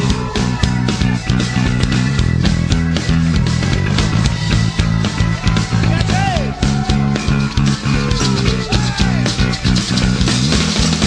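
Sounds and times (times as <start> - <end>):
rock band playing: 0.0 - 11.0
sliding high guitar notes: 0.0 - 11.0.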